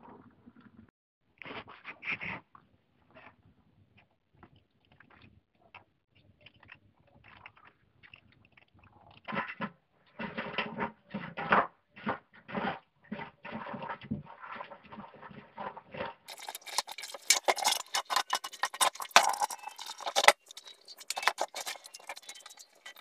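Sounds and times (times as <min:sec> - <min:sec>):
bristle brush scrubbing metal: 0:16.3 - 0:23.0
running water: 0:16.3 - 0:23.0.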